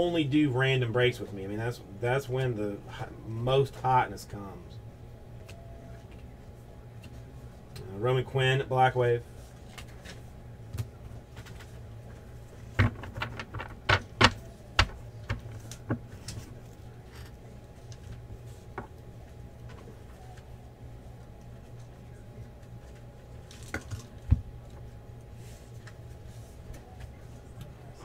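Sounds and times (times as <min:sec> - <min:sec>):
low background hum: 0:00.0 - 0:28.0.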